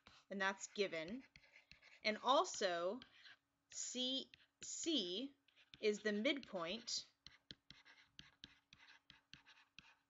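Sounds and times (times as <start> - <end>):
stylus scratching on pen tablet: 0.0 - 10.0.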